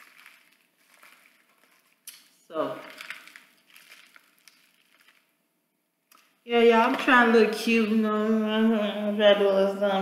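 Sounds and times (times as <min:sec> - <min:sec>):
plastic packaging crinkling: 0:00.0 - 0:05.4.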